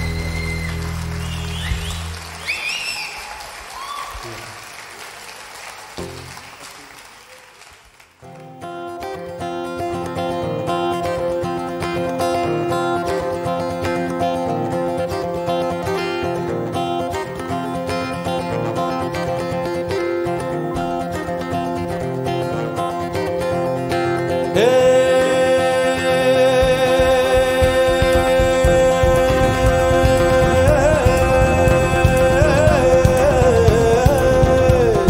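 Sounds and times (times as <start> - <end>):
whistles from crowd: 0.0 - 4.5
audience applauding and cheering: 0.0 - 8.6
acoustic guitar strumming chords: 8.2 - 35.0.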